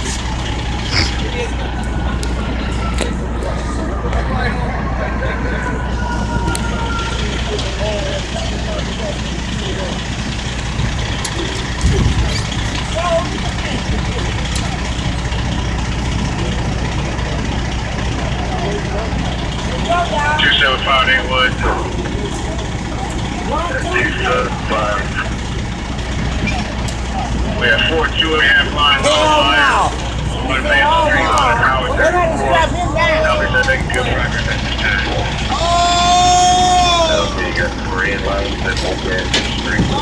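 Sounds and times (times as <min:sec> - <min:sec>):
large vehicle engine idling: 0:00.0 - 0:40.0
voices talking: 0:00.0 - 0:40.0.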